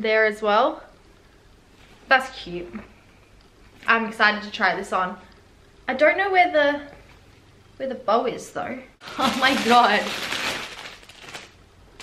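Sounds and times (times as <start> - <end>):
plastic bag crinkling: 9.0 - 12.0.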